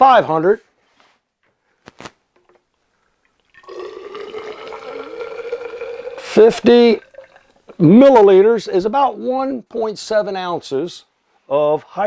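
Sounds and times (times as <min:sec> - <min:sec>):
liquid pouring into cylinder: 0:02.4 - 0:07.8.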